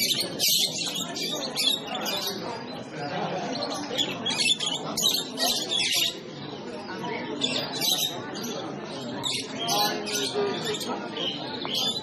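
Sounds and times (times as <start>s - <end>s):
murmur of voices: 0.0s - 12.0s
small birds chirping: 0.0s - 12.0s.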